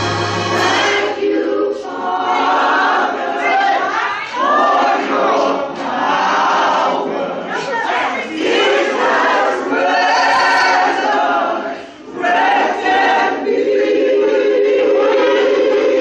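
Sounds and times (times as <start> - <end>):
gospel choir singing: 0.0 - 16.0.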